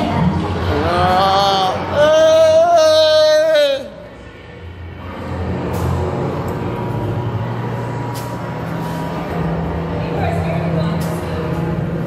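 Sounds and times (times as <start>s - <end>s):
machinery rumble: 0.0s - 12.0s.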